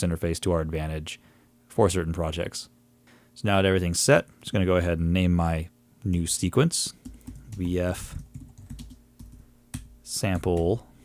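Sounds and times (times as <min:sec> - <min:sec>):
keyboard typing clicks: 0:06.9 - 0:10.7.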